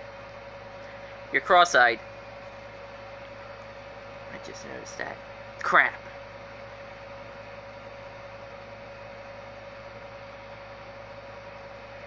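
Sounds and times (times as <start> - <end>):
room tone hum and hiss: 0.0 - 12.0.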